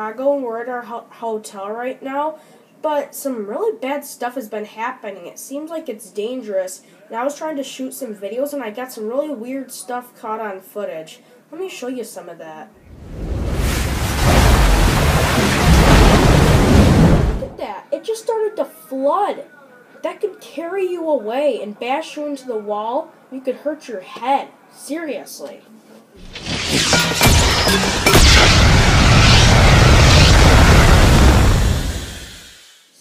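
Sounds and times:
heavy rumbling crash: 12.9 - 17.6, 26.2 - 32.8
sharp explosion cracks: 12.9 - 17.6, 26.2 - 32.8
floodwater rushing and splashing: 13.3 - 17.6.

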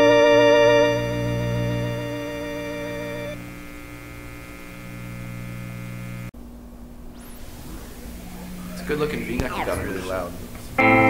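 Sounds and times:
held organ chord: 0.0 - 6.3
electrical hum and hiss: 0.0 - 11.0.

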